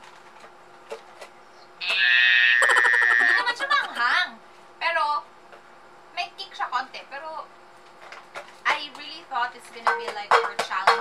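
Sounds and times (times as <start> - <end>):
short vocal cry: 1.8 - 4.0.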